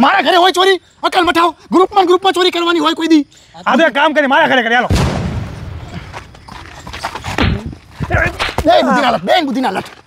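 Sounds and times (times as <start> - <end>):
loud bang: 4.9 - 6.1.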